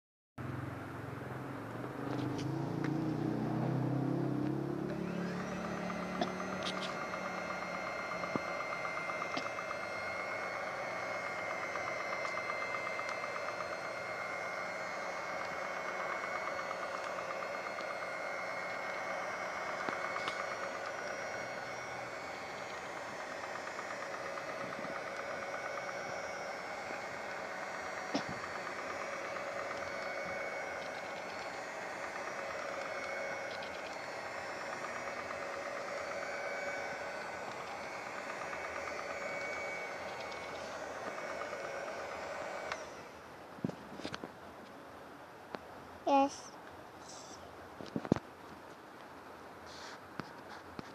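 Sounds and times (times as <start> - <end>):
electric mixer motor whine: 0.4 - 50.9
mixer clicks: 1.8 - 43.1.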